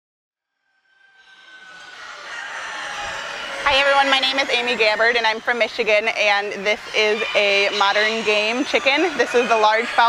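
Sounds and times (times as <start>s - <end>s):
rooster crowing: 0.6s - 10.0s
chickens clucking: 1.2s - 10.0s.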